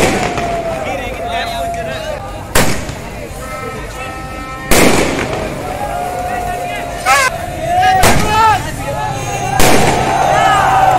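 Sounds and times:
firework bang: 0.0 - 0.8, 2.5 - 3.1, 4.7 - 5.7, 8.0 - 8.4, 9.6 - 10.3
street crowd voices: 0.0 - 10.9.

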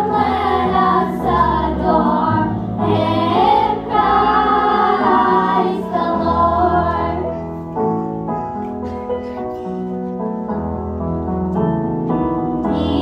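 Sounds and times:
children singing together: 0.0 - 7.4, 12.7 - 13.0.

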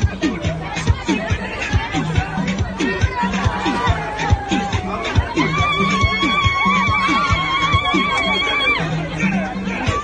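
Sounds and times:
dance music with drum beats: 0.0 - 10.0.

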